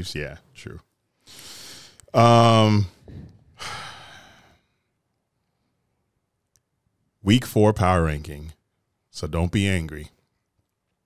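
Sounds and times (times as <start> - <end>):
man sighing: 1.3 - 4.6.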